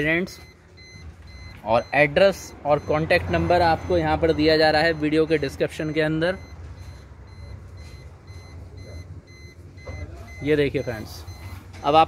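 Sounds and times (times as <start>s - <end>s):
short high beeps: 0.4s - 12.0s.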